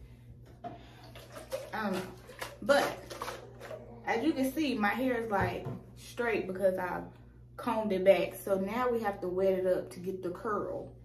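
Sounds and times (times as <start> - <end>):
woman saying um: 4.0 - 5.6.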